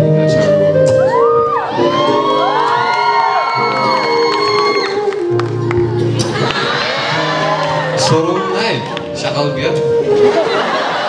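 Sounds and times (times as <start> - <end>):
background music with held notes: 0.0 - 11.0
audience cheering and whooping: 1.0 - 9.2, 10.2 - 11.0.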